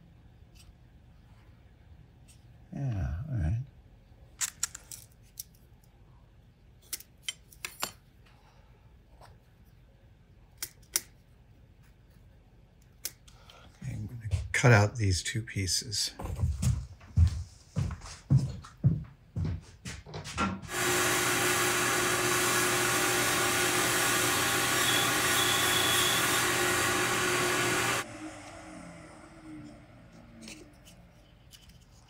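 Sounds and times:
power tool motor running: 20.7s - 30.4s.

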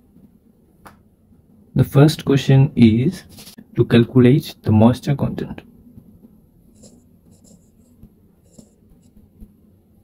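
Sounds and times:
stylus tapping and scratching on glass: 6.8s - 9.5s.

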